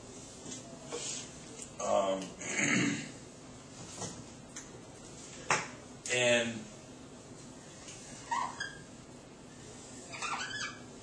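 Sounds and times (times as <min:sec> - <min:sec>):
faint room hiss: 0:00.0 - 0:11.0
marker squeaking on whiteboard: 0:08.1 - 0:08.9, 0:10.0 - 0:11.0.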